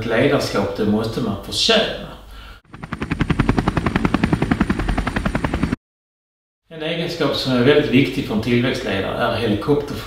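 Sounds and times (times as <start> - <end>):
helicopter rotor blades chopping: 2.7 - 5.8.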